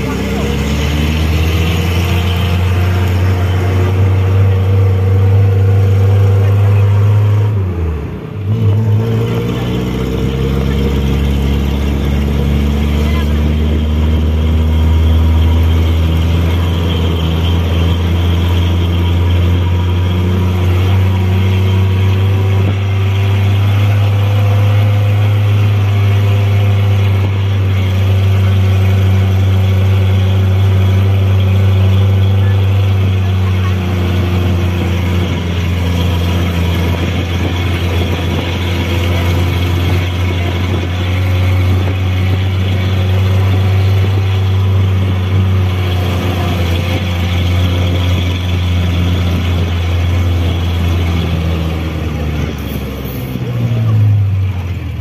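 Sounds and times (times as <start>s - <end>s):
vehicle engine running under load: 0.0s - 55.0s.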